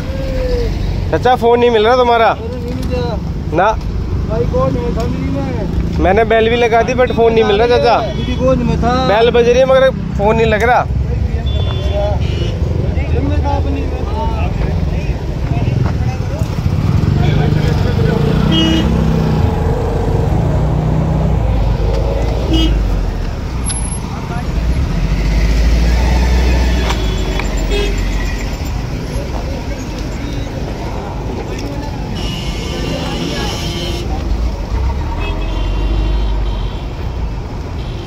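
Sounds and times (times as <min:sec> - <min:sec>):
people talking: 0:00.0 - 0:24.8, 0:26.0 - 0:35.0
traffic engines rumbling: 0:00.0 - 0:38.0
car horns honking: 0:06.4 - 0:08.8, 0:11.3 - 0:12.8, 0:18.2 - 0:19.5, 0:22.4 - 0:24.0, 0:26.4 - 0:28.8, 0:32.1 - 0:38.0.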